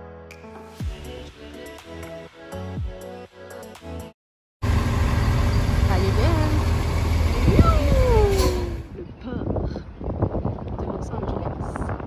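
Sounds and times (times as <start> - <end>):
bus engine rumbling: 4.6 - 9.3.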